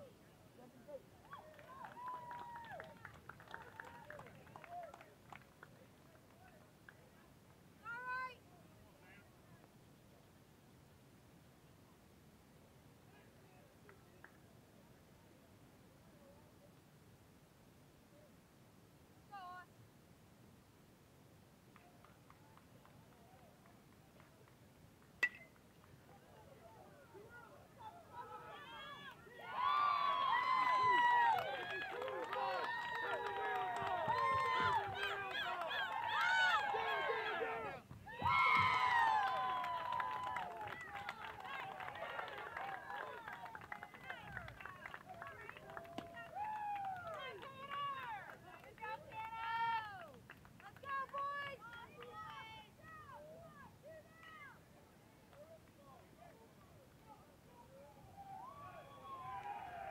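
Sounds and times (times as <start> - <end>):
spectators yelling and cheering: 27.2 - 44.2, 57.9 - 59.9.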